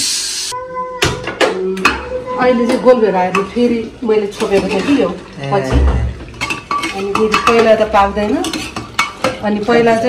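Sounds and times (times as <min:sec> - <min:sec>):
metal spoon scraping pot: 0:02.7 - 0:05.2, 0:06.3 - 0:10.0
spoon knocking pot: 0:05.7 - 0:09.4.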